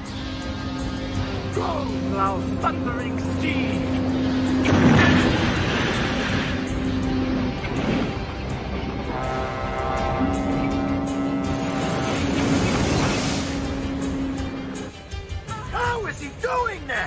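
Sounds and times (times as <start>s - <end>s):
film music with long held notes: 0.0s - 17.0s
vehicle noise: 0.0s - 17.0s
loud rush of noise: 3.4s - 9.0s.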